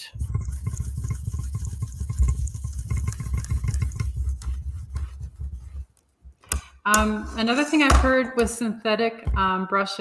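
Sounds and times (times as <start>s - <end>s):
steel wool scrubbing a panel: 0.1s - 5.9s.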